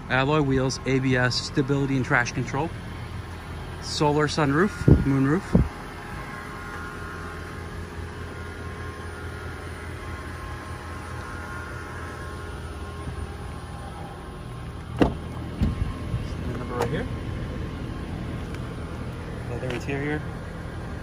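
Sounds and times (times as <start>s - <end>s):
steady low hum: 0.0s - 21.0s
car door knocks: 15.0s - 15.8s.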